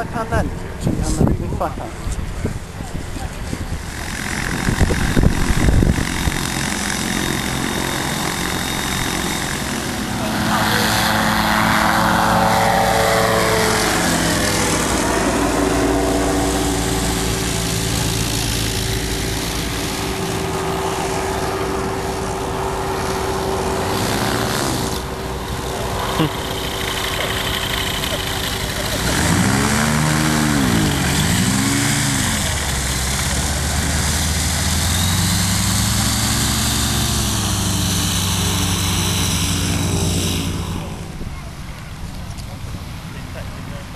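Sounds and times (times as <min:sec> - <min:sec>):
microlight aircraft propeller engines: 0:00.0 - 0:43.9.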